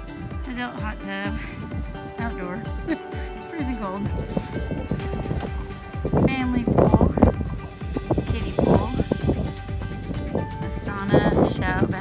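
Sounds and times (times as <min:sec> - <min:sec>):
background music: 0:00.0 - 0:12.0
wind buffeting microphone: 0:00.0 - 0:12.0.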